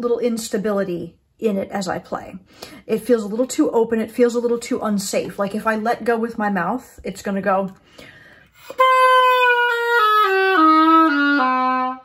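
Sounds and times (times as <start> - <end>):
oboe playing descending notes: 8.6 - 12.0.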